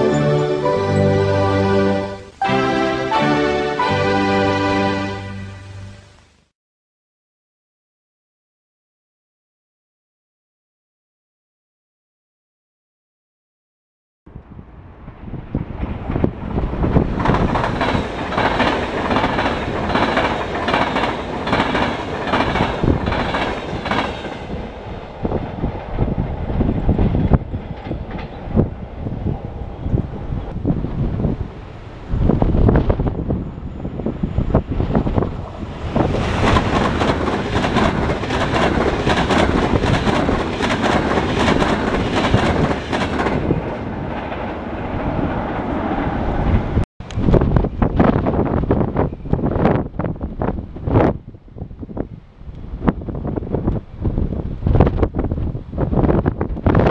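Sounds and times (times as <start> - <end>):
rail rumble: 14.3 - 56.9
train wheels clattering over rail joints: 16.9 - 24.6, 35.9 - 44.5.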